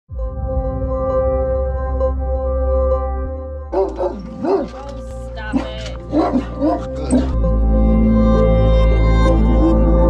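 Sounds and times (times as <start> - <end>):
background music: 0.1 - 10.0.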